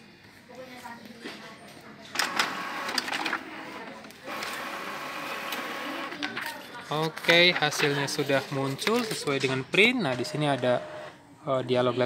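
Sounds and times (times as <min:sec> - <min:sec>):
inkjet printer printing: 0:02.1 - 0:11.2.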